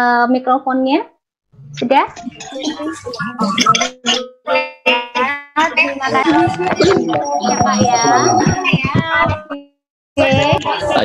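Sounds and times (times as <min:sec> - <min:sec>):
voices: 0:01.6 - 0:04.2, 0:05.2 - 0:11.0
plucked guitar music: 0:01.7 - 0:09.4.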